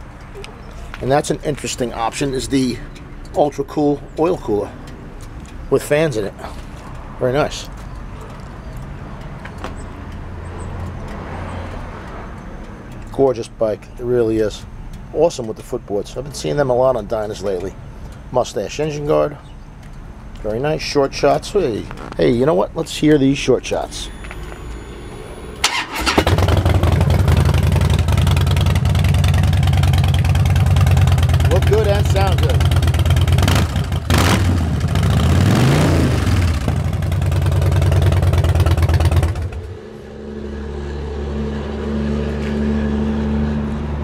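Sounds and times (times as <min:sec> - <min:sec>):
low rumble of vehicle: 0:00.0 - 0:44.0
motorcycle electric starter cranking: 0:25.6 - 0:34.0
motorcycle engine idling: 0:25.7 - 0:35.2, 0:36.4 - 0:39.8.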